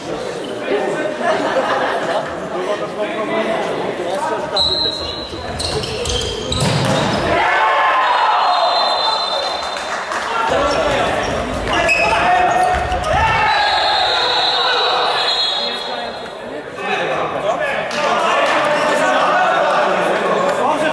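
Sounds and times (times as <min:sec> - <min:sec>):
referee's whistle: 0:04.6 - 0:07.2, 0:08.4 - 0:09.8, 0:13.4 - 0:16.1
players shouting in a hall: 0:07.0 - 0:20.9.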